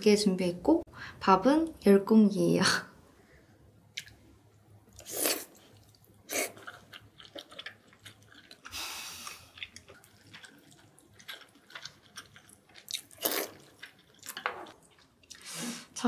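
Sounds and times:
wet chewing and mouth smacks: 3.9 - 4.2, 4.9 - 15.4.

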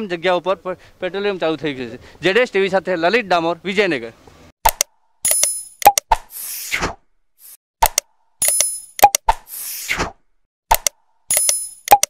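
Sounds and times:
mouse clicks: 10.7 - 12.0.

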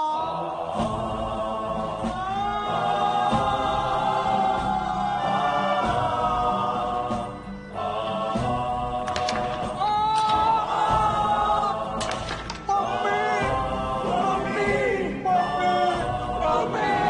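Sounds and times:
choir singing long notes: 0.0 - 17.0
low drums: 0.6 - 7.5.

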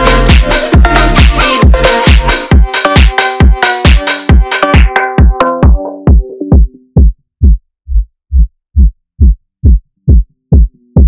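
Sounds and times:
electronic kick drum hits: 0.3 - 11.0.

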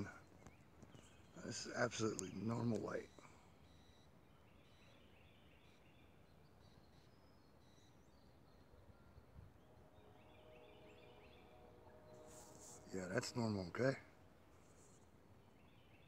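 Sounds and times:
faint distant bird calls: 0.0 - 16.0.

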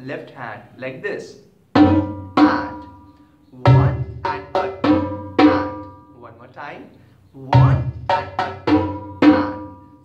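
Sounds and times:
conga drums played by hand: 1.8 - 2.9, 3.6 - 6.0, 7.5 - 9.9.

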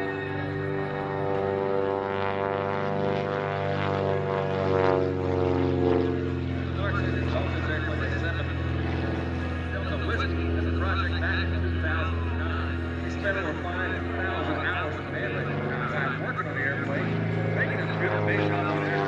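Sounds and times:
propeller plane passing overhead: 0.0 - 19.0.

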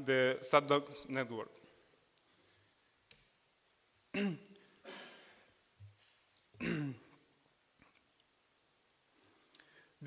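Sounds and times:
man clearing his throat: 4.1 - 5.4, 6.6 - 7.2.

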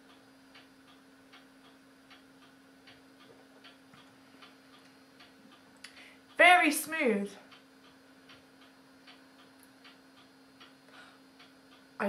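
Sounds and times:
low steady hum: 0.0 - 12.0
mantel clock ticking: 0.0 - 12.0.

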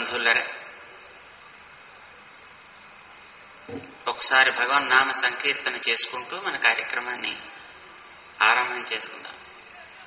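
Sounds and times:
high-pitched background hiss: 0.0 - 10.0.

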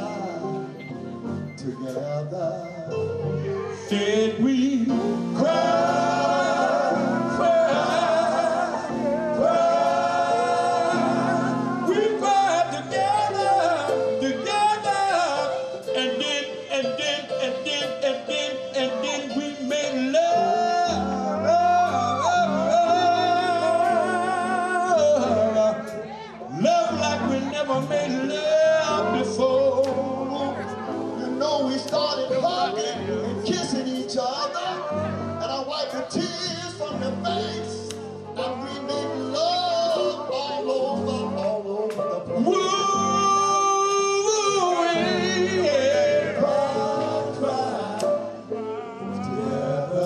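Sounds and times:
instrumental backing: 0.0 - 50.0
live r and b band: 0.0 - 50.0
male vocal group singing: 0.0 - 50.0.

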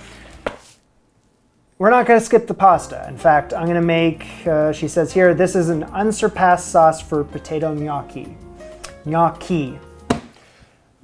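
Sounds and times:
man speaking: 1.8 - 9.9.

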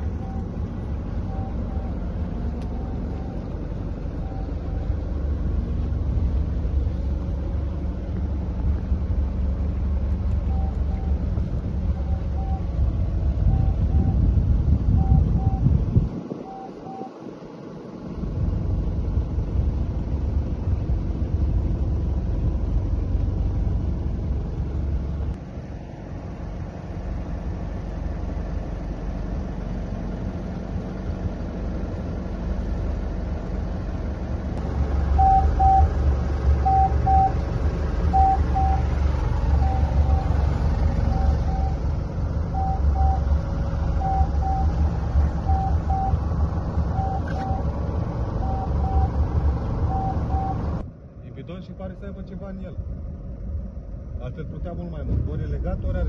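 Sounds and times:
boat engine rumble: 0.0 - 56.0
electronic alarm double beeps: 1.2 - 2.0, 14.9 - 15.7, 16.4 - 17.2, 35.2 - 35.9, 36.6 - 37.4, 38.1 - 38.9, 39.6 - 40.4, 41.0 - 41.8, 42.5 - 43.3, 43.9 - 44.8, 45.4 - 46.2, 46.9 - 47.7, 48.4 - 49.2, 49.8 - 50.7.

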